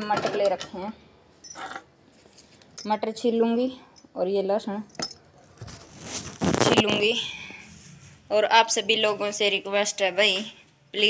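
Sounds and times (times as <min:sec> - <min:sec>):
rustling handling noise: 0:01.5 - 0:03.0, 0:04.9 - 0:08.2.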